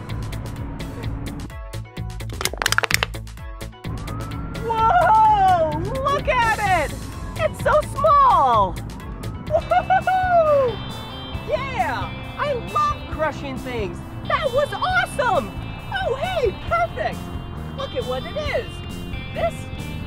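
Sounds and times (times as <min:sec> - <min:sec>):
background music: 0:00.0 - 0:20.0
soda can crumpling under shoe: 0:02.3 - 0:03.2.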